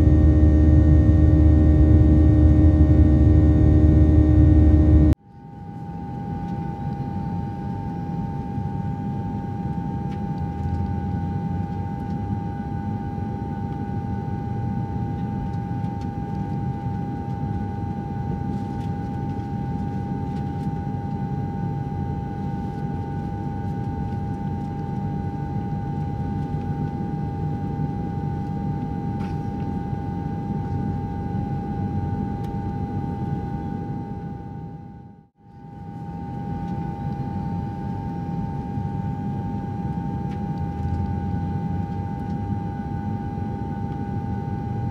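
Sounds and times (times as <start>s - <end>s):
steady mid-pitched tone: 0.0s - 5.2s
jet engine and airflow rumble: 0.0s - 44.9s.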